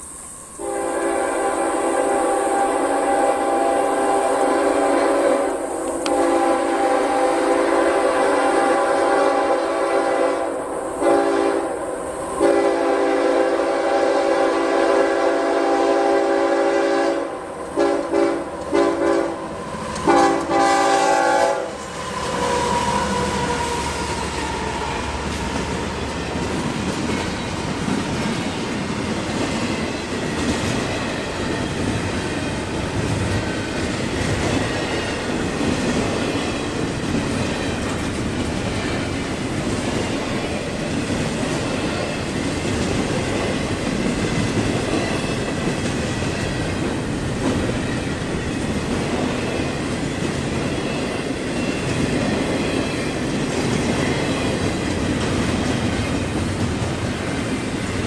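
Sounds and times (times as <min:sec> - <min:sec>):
train wheels rumbling on rail: 0:00.0 - 0:58.0
locomotive air horn blasts: 0:00.6 - 0:11.8, 0:12.4 - 0:19.4, 0:20.0 - 0:24.3.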